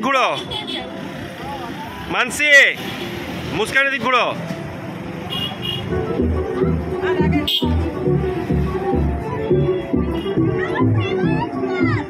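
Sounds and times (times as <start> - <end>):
vehicle running noise: 0.0 - 12.0
music: 3.1 - 12.0.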